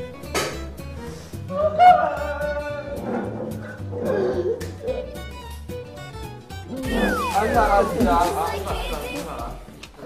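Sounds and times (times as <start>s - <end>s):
background music: 0.0s - 10.0s
voices: 6.8s - 9.7s.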